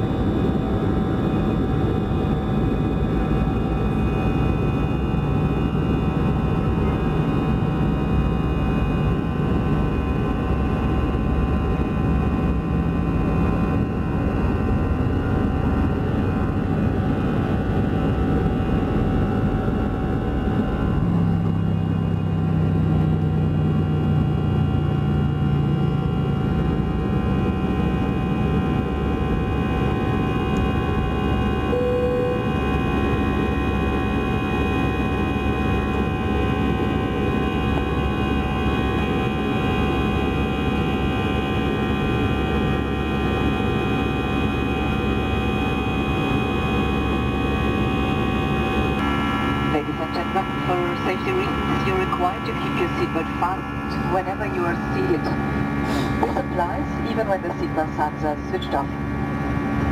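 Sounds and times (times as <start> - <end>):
deep drone: 0.0 - 59.9
high fan whines: 0.0 - 59.9
jet engine roar: 0.0 - 59.9.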